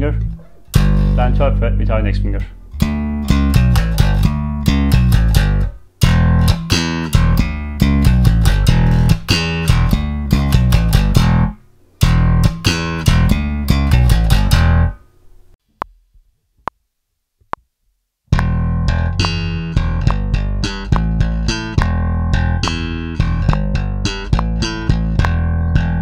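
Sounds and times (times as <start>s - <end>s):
slap bass guitar: 0.0s - 15.0s, 18.3s - 26.0s.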